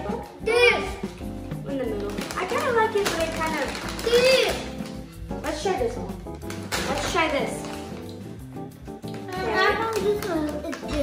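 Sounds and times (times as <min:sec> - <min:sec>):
children talking and exclaiming: 0:00.0 - 0:06.3, 0:09.1 - 0:11.0
background music: 0:00.0 - 0:11.0.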